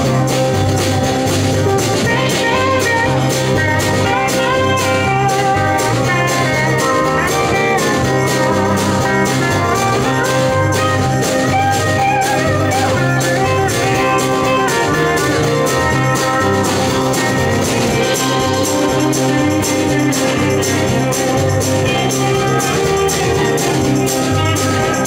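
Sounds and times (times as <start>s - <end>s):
bass: 0.0s - 25.0s
keyboard: 0.0s - 25.0s
sliding lead line: 0.0s - 25.0s
steady drum beat: 0.0s - 25.0s.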